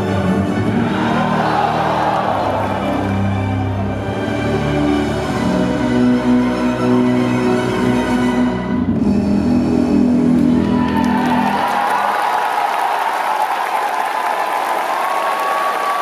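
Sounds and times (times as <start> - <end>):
audience applauding: 0.8 - 3.1, 10.4 - 16.0.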